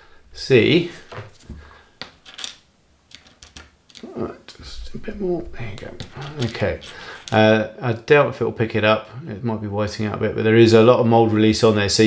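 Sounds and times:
small plastic parts clicking: 2.0 - 4.1.

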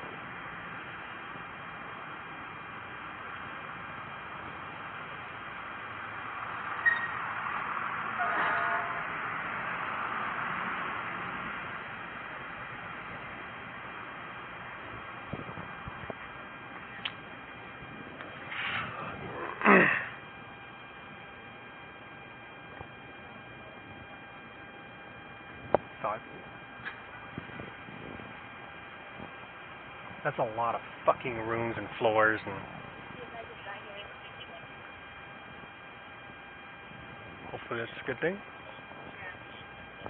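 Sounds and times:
microphone hiss and hum: 8.8 - 40.0.

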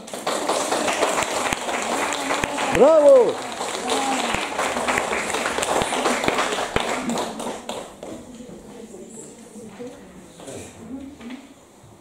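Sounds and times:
audience applauding: 0.0 - 8.1
people calling out: 0.8 - 4.6.

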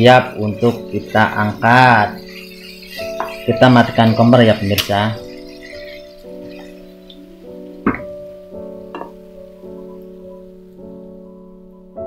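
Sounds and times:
soft piano music: 0.0 - 12.0
spatula knocking on frying pan: 0.2 - 6.8, 7.8 - 8.3, 8.9 - 9.3.

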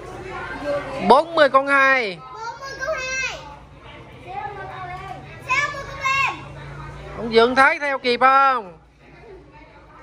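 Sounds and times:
children's voices: 2.3 - 3.6, 4.2 - 6.8.

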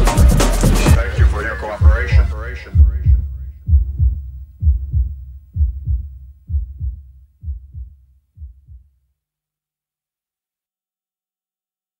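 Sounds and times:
electronic dance drum thumps: 0.0 - 8.9.

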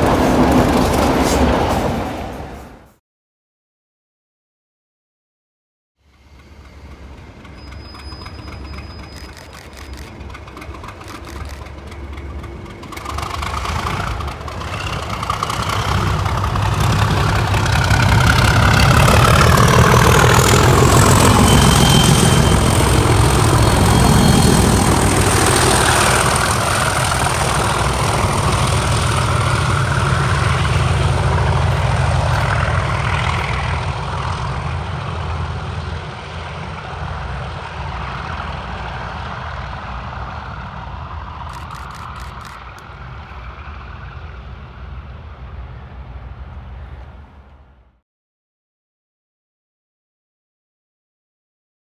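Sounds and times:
diesel locomotive engines working hard: 0.0 - 3.0, 6.0 - 48.0
high whistle: 21.2 - 22.8.

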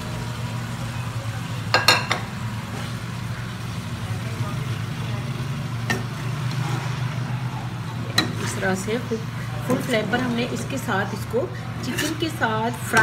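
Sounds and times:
food frying in a wok: 0.0 - 13.0.

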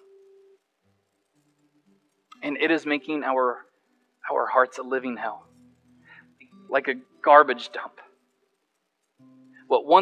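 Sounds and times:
faint held low tones: 0.0 - 10.0.

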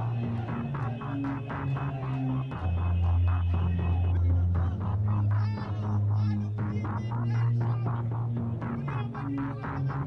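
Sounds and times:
background music with low bass: 0.0 - 10.0.

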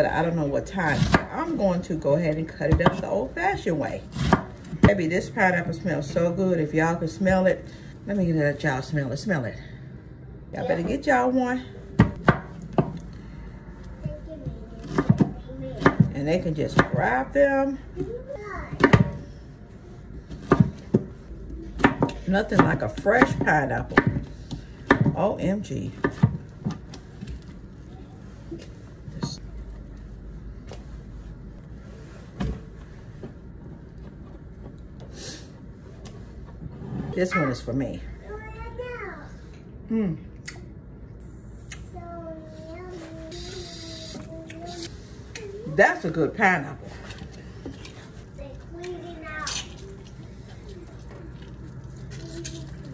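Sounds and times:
woman humming: 39.9 - 40.2.

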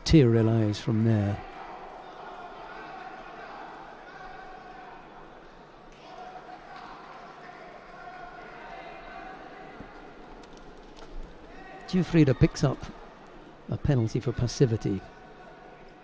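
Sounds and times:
murmur of arena crowd: 0.0 - 16.0.

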